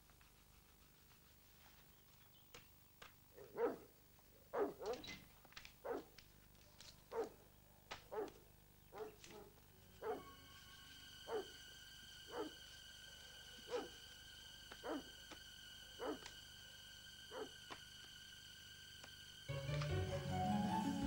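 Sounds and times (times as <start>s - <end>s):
dog barking: 3.4s - 3.9s, 4.5s - 5.2s, 5.8s - 6.1s, 7.1s - 7.4s, 8.0s - 10.3s, 11.3s - 11.6s, 12.3s - 12.6s, 13.7s - 14.0s, 14.7s - 15.1s, 16.0s - 16.3s, 17.3s - 17.5s
faint steady high tone: 9.8s - 12.5s.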